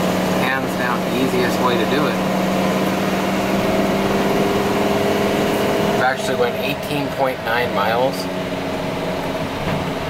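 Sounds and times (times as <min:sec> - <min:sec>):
truck engine and road noise: 0:00.0 - 0:10.0.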